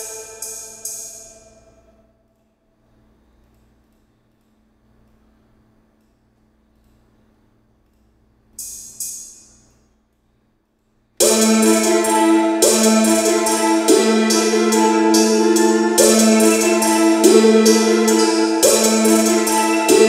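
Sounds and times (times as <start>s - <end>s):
cymbal hits ringing: 0.0s - 2.0s, 11.2s - 20.0s
low hum: 11.2s - 20.0s.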